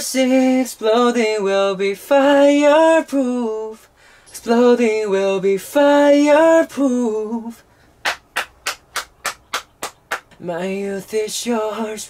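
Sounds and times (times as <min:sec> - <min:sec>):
person clapping hands: 0:08.0 - 0:10.4.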